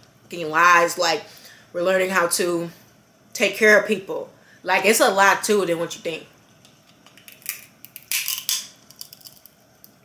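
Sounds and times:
crisp clicks and crunches: 7.2 - 10.0.

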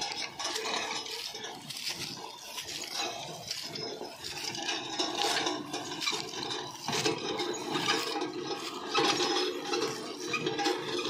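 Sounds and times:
tines scraping through dry grass: 0.0 - 11.0.

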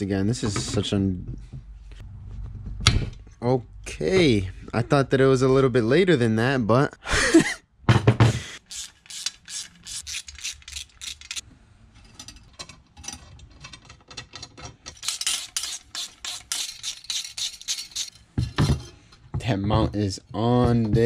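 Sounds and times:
ratcheting hand driver clicks: 8.7 - 11.4.

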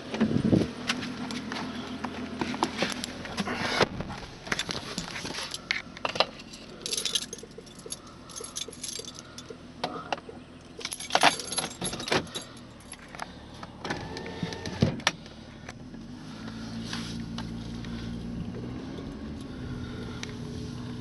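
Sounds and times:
car engine hum: 0.0 - 21.0
car keys jangling: 4.4 - 9.7, 10.7 - 13.3.

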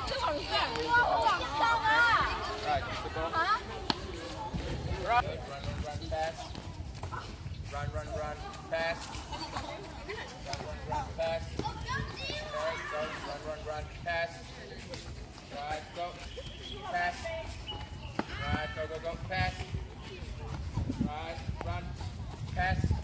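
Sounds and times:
children chattering and calling out: 0.0 - 23.0
running footsteps on pavement: 0.0 - 23.0.

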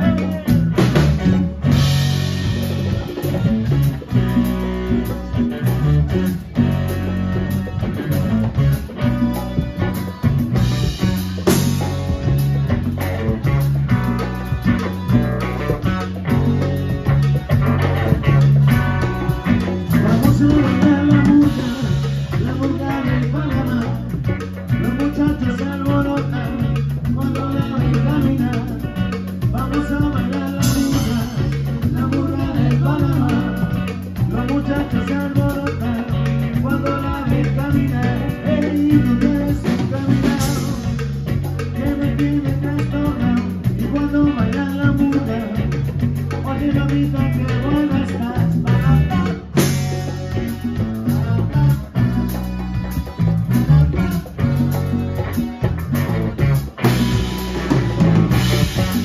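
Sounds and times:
congas and timbales: 0.0 - 59.0
drum kit: 0.0 - 59.0
electric bass: 0.0 - 59.0
electric guitar: 0.0 - 59.0
keyboard: 0.0 - 59.0.

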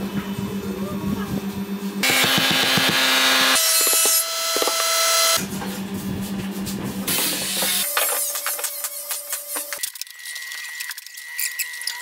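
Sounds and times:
wood being sawn: 2.0 - 5.4.

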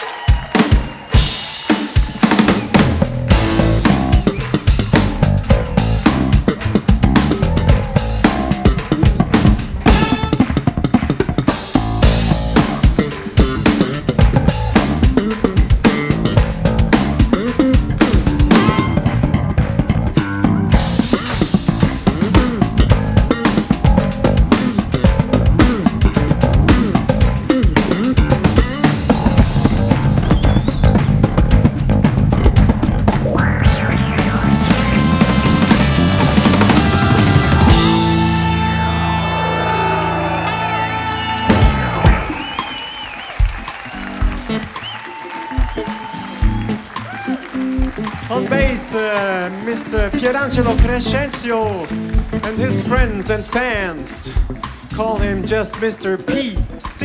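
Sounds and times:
drum kit playing: 0.0 - 57.0
electric bass guitar: 2.6 - 42.6, 45.7 - 57.0.

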